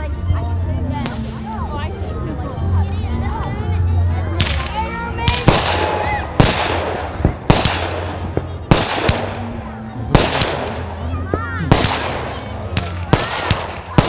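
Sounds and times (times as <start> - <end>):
fireworks bangs: 4.4 - 14.0.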